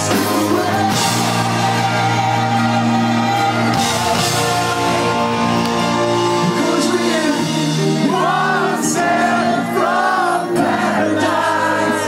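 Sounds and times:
male singer singing: 0.0 - 5.5, 6.3 - 12.0
drums: 0.0 - 12.0.

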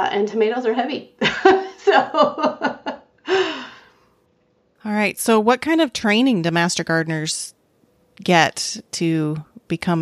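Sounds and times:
woman's breathy sigh: 3.2 - 4.0.

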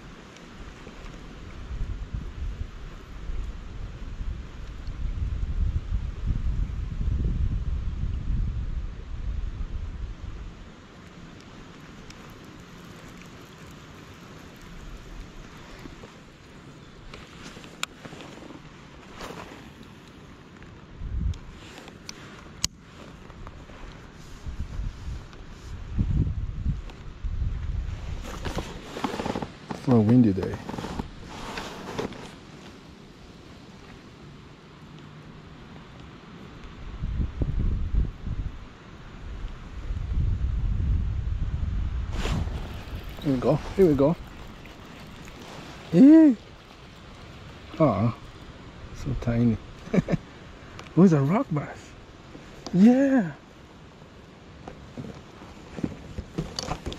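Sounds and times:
wind buffeting microphone: 1.5 - 10.7, 20.8 - 21.7, 24.1 - 28.9, 36.7 - 50.7
faint ticks: 11.0 - 16.2.

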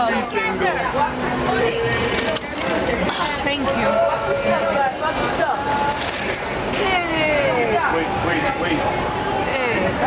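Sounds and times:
train wheels squealing on rails: 0.0 - 8.8.

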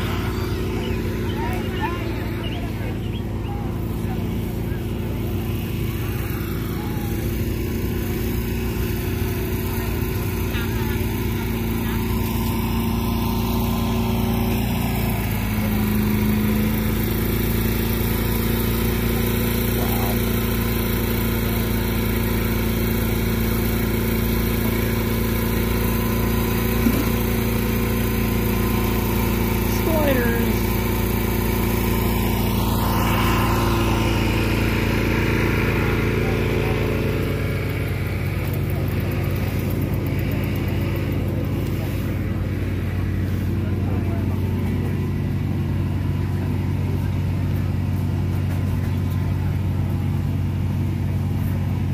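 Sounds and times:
indistinct crowd chatter: 0.0 - 15.7, 35.4 - 50.2
generator engine humming: 0.0 - 51.9.

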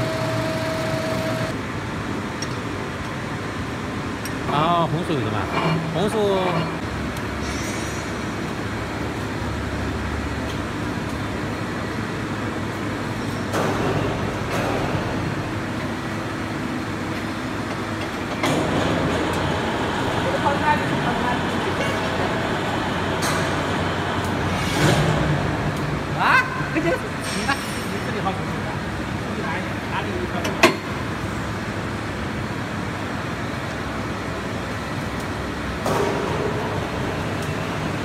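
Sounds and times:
workshop machinery rumble: 0.0 - 38.0.

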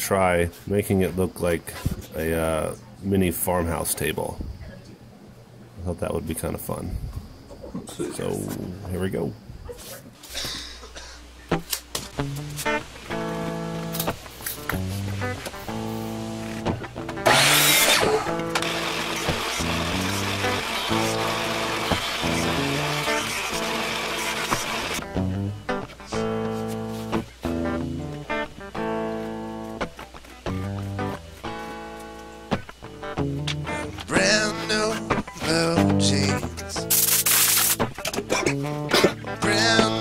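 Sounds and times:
plucked-string background music: 11.5 - 40.0
jointer rushing noise: 17.2 - 25.0.

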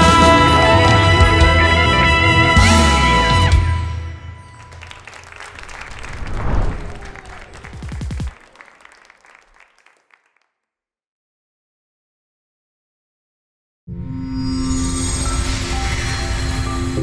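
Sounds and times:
big band brass and drums: 0.0 - 3.9
audience applause: 4.6 - 10.5.

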